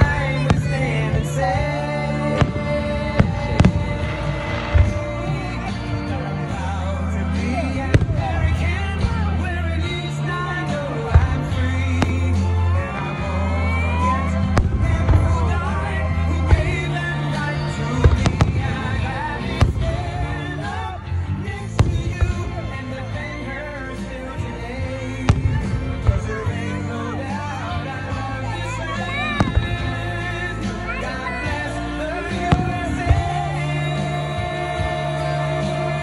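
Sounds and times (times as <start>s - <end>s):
fireworks bangs: 0.0s - 6.6s, 7.8s - 23.8s, 25.1s - 27.5s, 29.3s - 36.0s
music playing: 0.0s - 36.0s.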